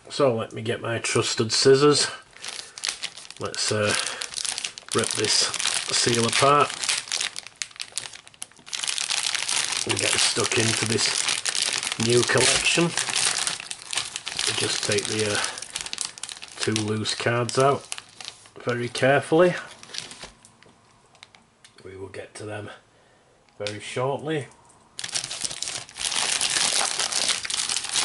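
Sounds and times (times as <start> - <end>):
plastic wrapper crinkling: 1.6 - 21.4, 25.0 - 28.0
cellophane and cards crackling: 2.3 - 20.6, 25.0 - 28.0.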